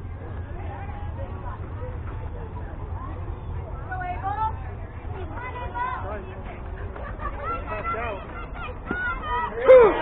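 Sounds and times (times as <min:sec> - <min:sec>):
voices calling out: 0:00.2 - 0:10.0
loud short shout: 0:08.9 - 0:10.0.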